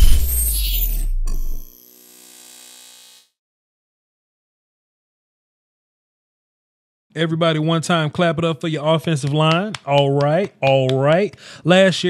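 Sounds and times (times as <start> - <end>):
deep bass boom: 0.0 - 1.2.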